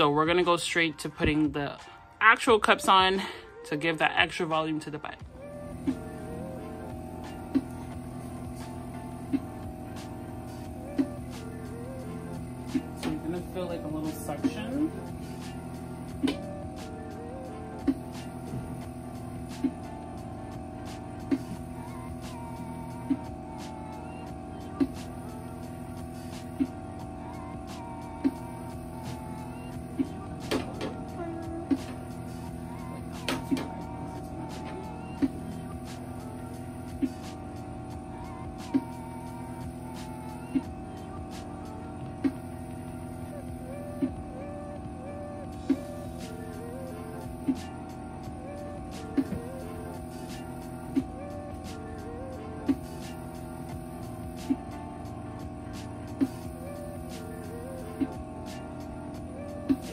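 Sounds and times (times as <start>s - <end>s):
vacuum machine humming: 5.2s - 59.9s.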